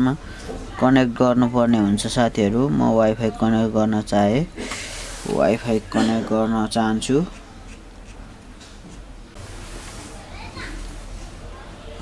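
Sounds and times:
faint distant voices: 0:09.8 - 0:12.0.

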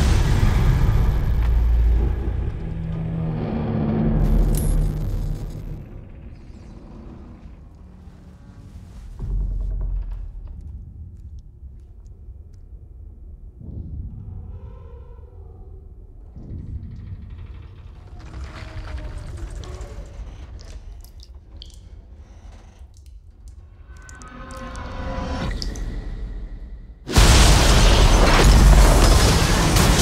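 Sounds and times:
deep continuous rumble: 0:00.0 - 0:25.4
metallic groans: 0:02.0 - 0:10.6, 0:14.0 - 0:25.4
drip-like ticks: 0:20.4 - 0:26.0.

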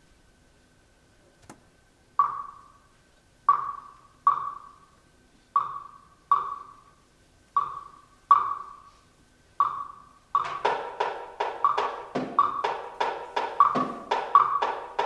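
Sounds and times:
pitched percussion strikes: 0:10.4 - 0:15.0.

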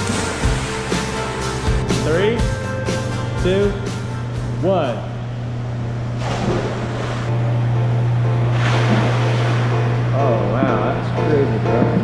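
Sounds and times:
background music with singing: 0:00.0 - 0:04.5
steady low hum: 0:00.0 - 0:12.0
water splashing: 0:06.2 - 0:07.3, 0:08.4 - 0:11.0
rush of water: 0:08.5 - 0:10.1.

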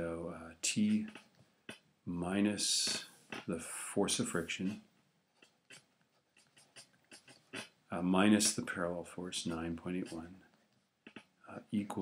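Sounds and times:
stylus tapping and scratching screen: 0:00.6 - 0:02.0, 0:02.6 - 0:12.0.

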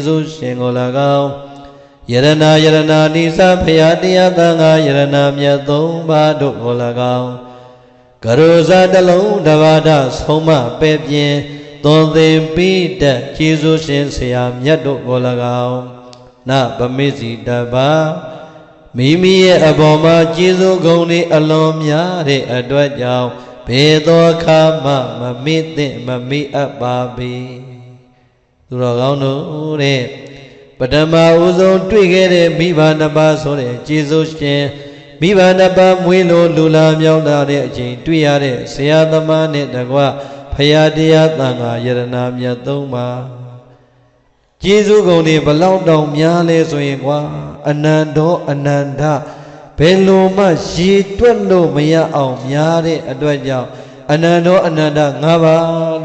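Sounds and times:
man chanting: 0:00.0 - 0:56.0.

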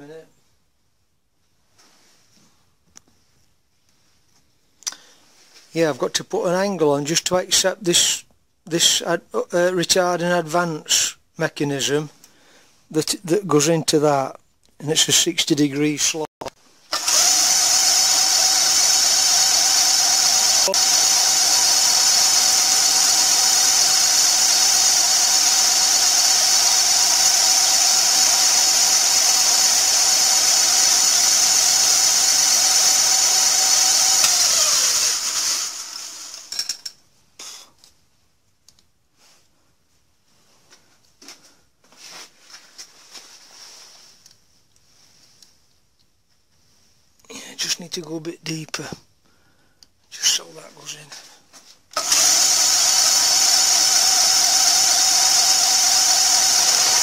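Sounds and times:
milling machine whining: 0:16.9 - 0:36.6, 0:52.0 - 0:57.0
motor spinning down: 0:16.9 - 0:36.6, 0:52.0 - 0:57.0.

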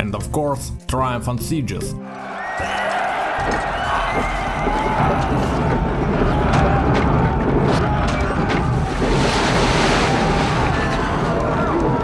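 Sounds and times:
faint background music: 0:00.0 - 0:07.3
loud rushing liquid pouring: 0:04.5 - 0:12.0.

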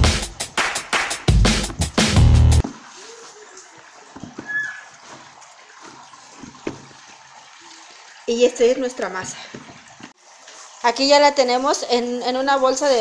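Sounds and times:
electronic music with heavy beat: 0:00.0 - 0:02.6.

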